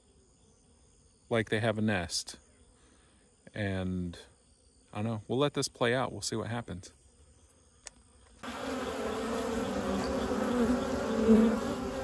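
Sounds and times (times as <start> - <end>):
honey bees buzzing: 8.3 - 12.0.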